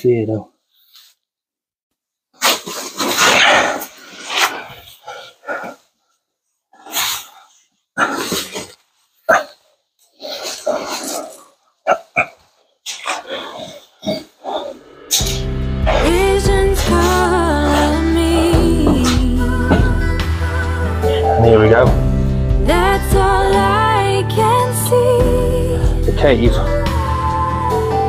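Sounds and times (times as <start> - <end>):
music: 15.1 - 28.0.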